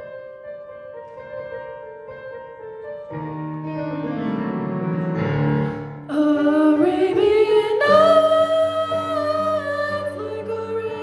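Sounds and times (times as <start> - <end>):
piano accompaniment: 0.0 - 11.0
young woman singing: 6.1 - 11.0.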